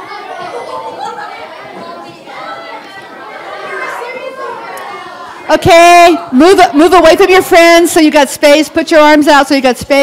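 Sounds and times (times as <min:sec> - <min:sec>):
children chattering: 0:00.0 - 0:09.2.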